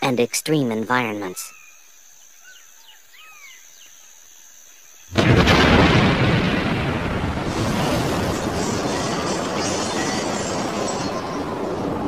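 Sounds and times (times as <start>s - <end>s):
birds chirping: 0.0s - 5.2s, 8.1s - 12.0s.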